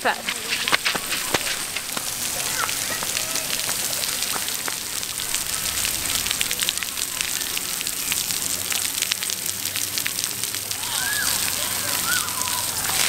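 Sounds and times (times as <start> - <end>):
droplets pattering on concrete: 0.0 - 13.0
water jets spraying: 0.0 - 13.0.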